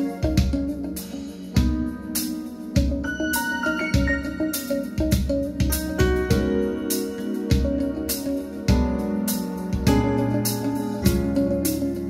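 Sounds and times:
drum hits: 1.6s - 1.9s, 3.8s - 6.7s, 9.8s - 10.2s.

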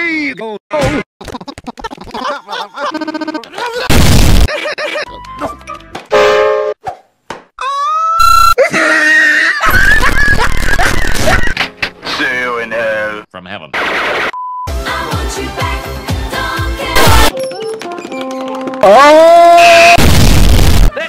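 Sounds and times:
loud distorted blasts: 3.9s - 4.5s, 19.7s - 20.9s.

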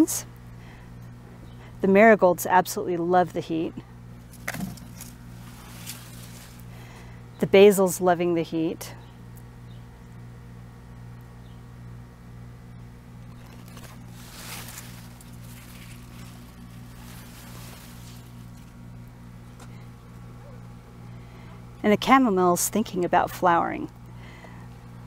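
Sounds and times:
steady low hum: 0.0s - 25.0s
leaves rustling against camera: 4.3s - 6.9s, 13.2s - 19.1s.

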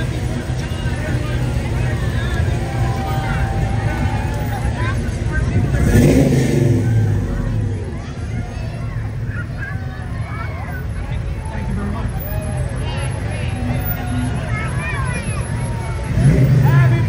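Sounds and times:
car engine passing: 0.0s - 17.0s
crowd voices: 0.0s - 17.0s.

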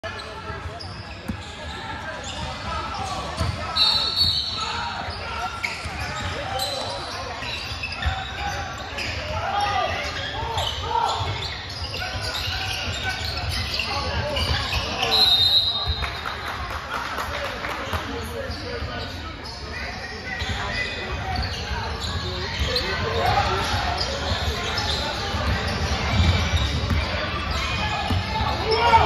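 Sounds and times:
spectators chatting: 0.0s - 29.0s
referee's whistle blasts: 3.7s - 4.7s, 15.0s - 16.0s.

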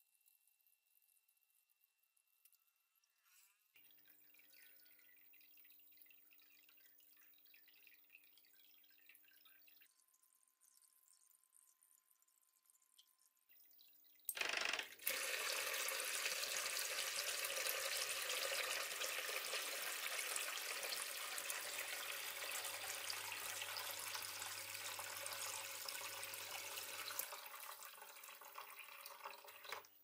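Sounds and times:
water pump switching on: 14.3s - 16.4s.

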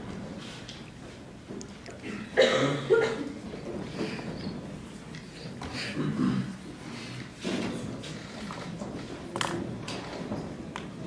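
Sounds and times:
people moving in room: 0.0s - 11.0s.

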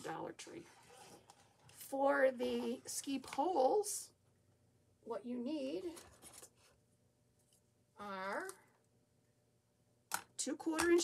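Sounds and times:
faint handling rustle: 5.8s - 6.8s.

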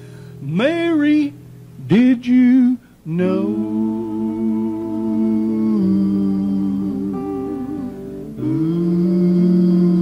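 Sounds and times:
electric guitars with vibrato: 0.0s - 10.0s.

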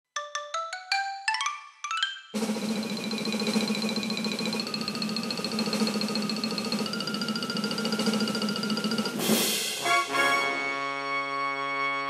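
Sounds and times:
bell-like jingle rising in pitch: 1.9s - 9.2s.

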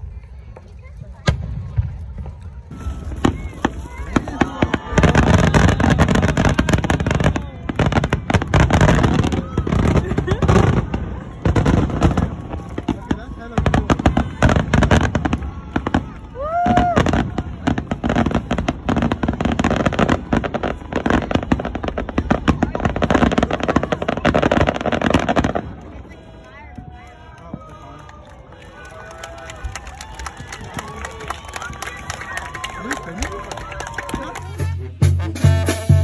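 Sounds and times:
crowd voices: 0.0s - 36.0s
fireworks bangs and crackling: 0.0s - 36.0s.

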